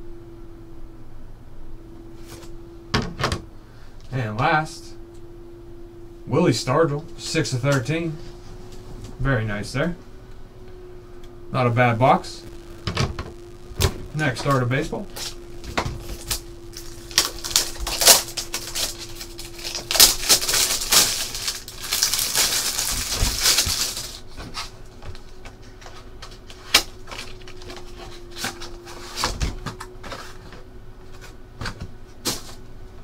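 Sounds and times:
cardboard and plastic crackling: 12.4 - 32.6
packaging crinkling: 15.0 - 29.3.

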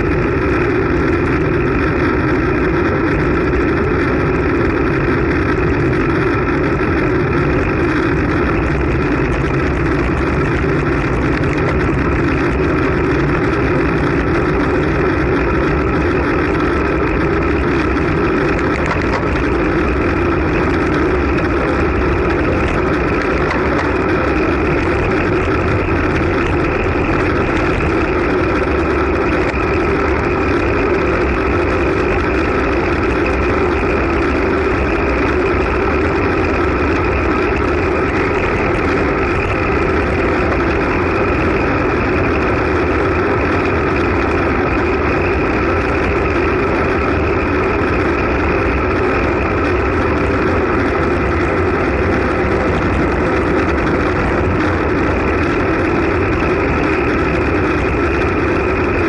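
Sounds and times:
bicycle road noise: 0.0 - 59.0
wind rush: 0.0 - 59.0.

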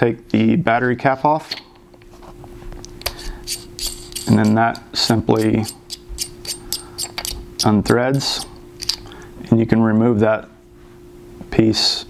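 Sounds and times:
metal cap unscrewing with clicks: 3.0 - 9.1.

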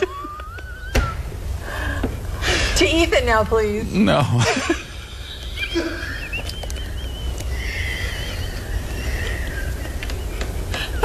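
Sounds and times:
man laughing uncontrollably: 0.0 - 1.2, 4.4 - 7.4
steady low hum: 0.0 - 11.0.

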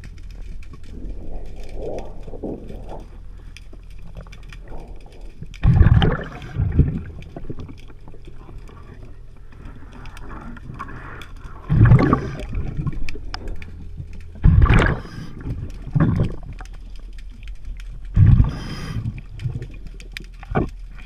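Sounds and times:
faint clicks: 0.0 - 21.0
low underwater hum: 0.0 - 21.0
underwater breath bubbles: 5.6 - 7.6, 9.7 - 13.1, 14.4 - 16.5, 18.1 - 19.8.

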